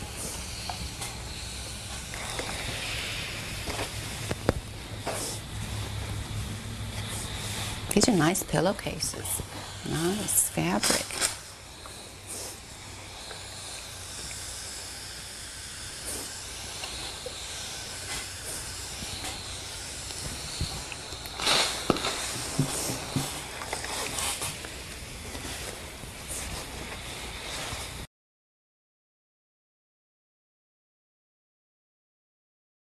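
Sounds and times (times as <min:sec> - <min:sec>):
burst of steam: 0:00.0 - 0:04.4, 0:05.0 - 0:05.9, 0:07.0 - 0:28.0
steam iron hissing: 0:00.0 - 0:28.1.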